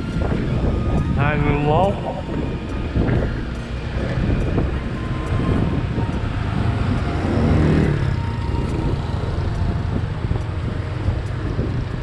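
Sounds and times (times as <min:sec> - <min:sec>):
motorbike engine and tyres rumbling: 0:00.0 - 0:12.0
wind rushing over microphone: 0:00.0 - 0:12.0.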